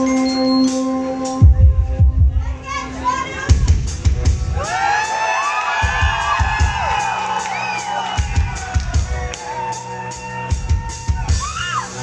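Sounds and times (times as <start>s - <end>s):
bass drum thumps: 1.4s - 2.6s
crowd shouting and cheering: 2.2s - 12.0s.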